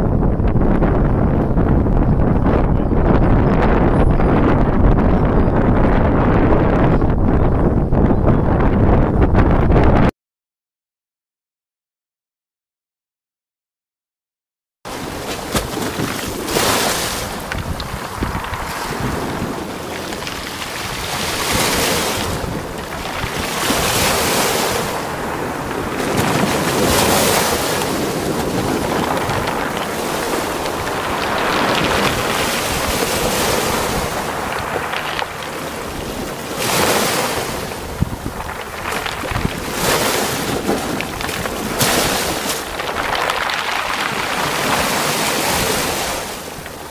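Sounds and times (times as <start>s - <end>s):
wind buffeting microphone: 0.0s - 10.1s, 14.9s - 46.9s
choppy sea water rushing: 14.9s - 46.9s.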